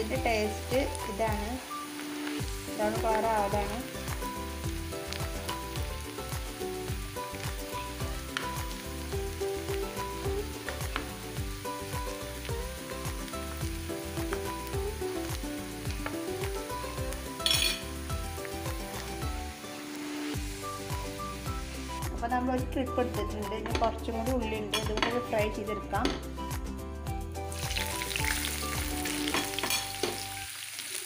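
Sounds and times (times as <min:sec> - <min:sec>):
onions sizzling in oil: 0:00.0 - 0:22.3, 0:27.4 - 0:31.0.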